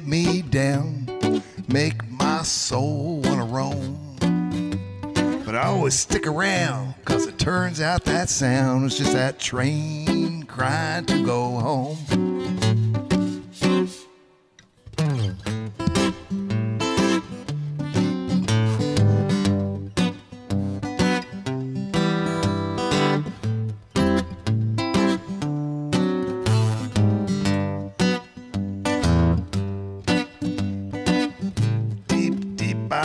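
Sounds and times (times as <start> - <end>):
acoustic guitar playing: 0.0 - 33.0.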